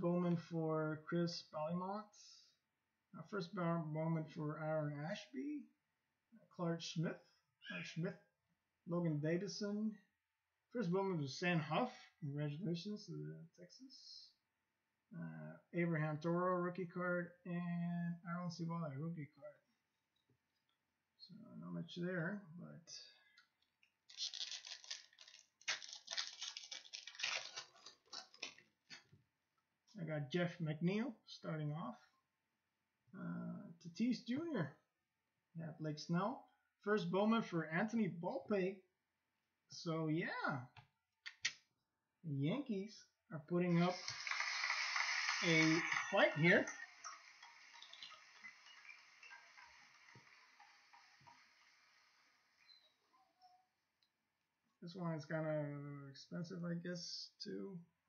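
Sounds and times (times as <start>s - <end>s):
foil wrapper crinkling and tearing: 24.1s - 28.6s.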